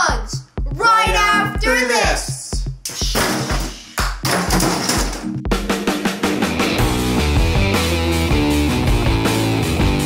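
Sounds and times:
driving drum beat: 0.0s - 10.0s
rock backing music: 2.7s - 10.0s.

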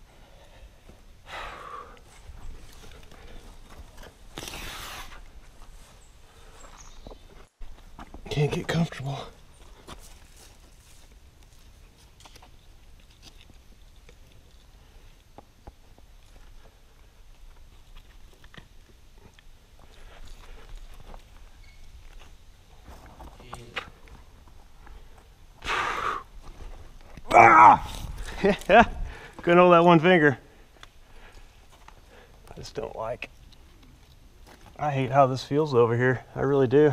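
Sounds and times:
person breathing hard: 0.0s - 2.2s, 24.9s - 26.4s.

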